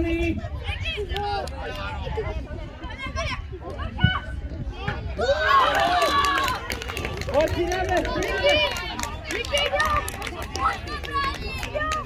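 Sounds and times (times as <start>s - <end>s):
people shouting and talking: 0.0s - 12.0s.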